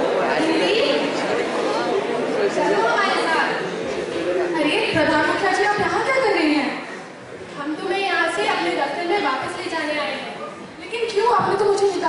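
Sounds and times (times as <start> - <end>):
people talking: 0.0 - 6.9, 7.6 - 12.0.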